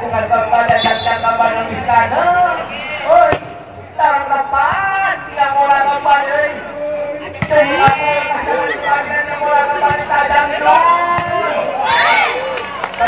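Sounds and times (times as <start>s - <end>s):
voices calling and shouting: 0.0s - 13.0s.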